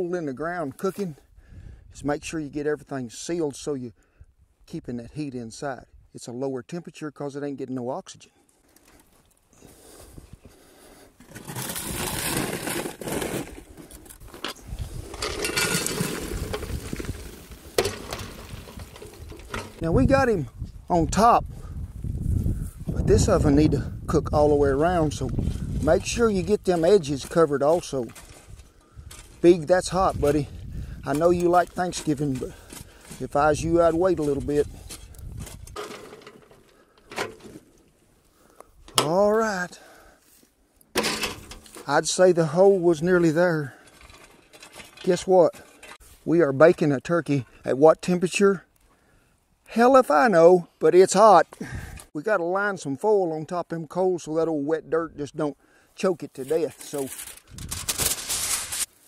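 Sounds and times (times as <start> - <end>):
coals scraping on metal: 10.8 - 19.8
shovel scraping dirt: 11.2 - 20.0, 24.9 - 37.8, 56.3 - 59.0
wind rumble on microphone: 14.6 - 15.2, 16.2 - 17.3, 18.4 - 26.6, 29.8 - 31.1, 33.5 - 35.8, 57.4 - 57.9.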